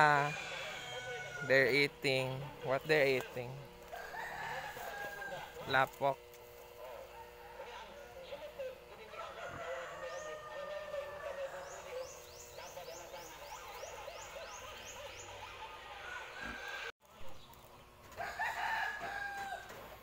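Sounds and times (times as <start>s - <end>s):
rooster crowing: 0.0s - 1.9s, 3.9s - 5.9s, 6.8s - 12.2s, 12.8s - 16.9s, 18.1s - 20.0s
chickens clucking: 9.0s - 18.4s.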